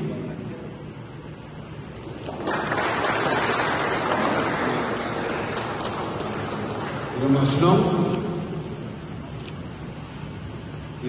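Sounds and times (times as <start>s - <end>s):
audience applauding: 2.0s - 7.6s.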